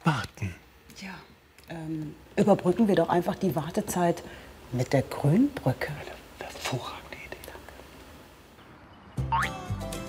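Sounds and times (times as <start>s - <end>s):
person whispering: 5.9s - 7.9s.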